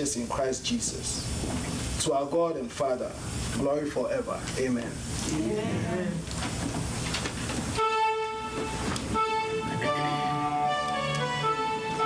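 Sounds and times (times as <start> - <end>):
instrument long held note: 7.8 - 12.0.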